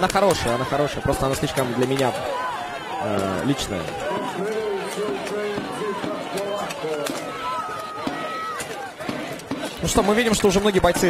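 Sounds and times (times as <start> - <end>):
men shouting: 0.0 - 11.0.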